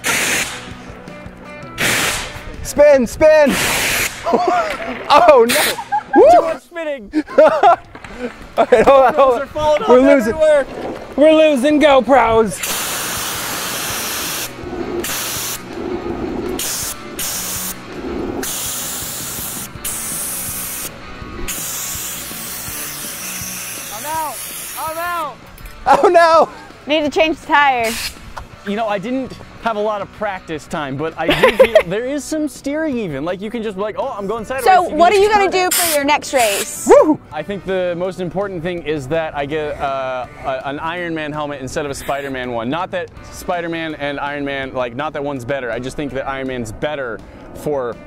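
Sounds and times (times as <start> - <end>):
fire extinguisher hissing blasts: 0.0 - 0.9, 1.8 - 2.4, 3.5 - 4.3, 5.5 - 5.9, 12.6 - 23.7, 27.8 - 28.3
chair rolling: 10.1 - 11.6, 14.2 - 19.8.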